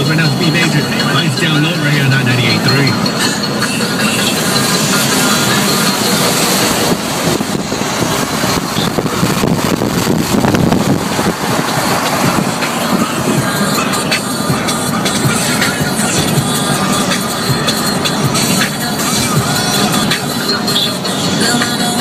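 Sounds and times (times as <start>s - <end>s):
car radio music: 0.0s - 22.0s
car road noise: 0.0s - 22.0s.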